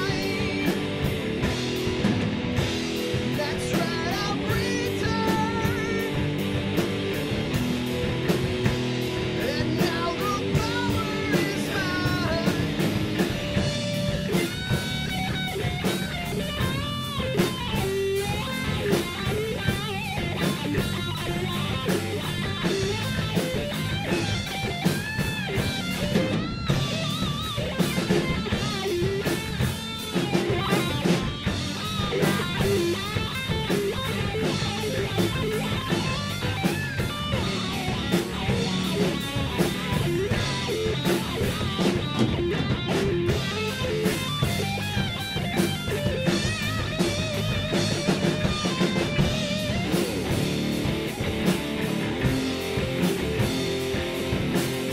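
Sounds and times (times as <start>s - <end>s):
drum kit beat: 0.0s - 54.9s
electric bass: 0.0s - 54.9s
electric guitar bent notes: 0.0s - 54.9s.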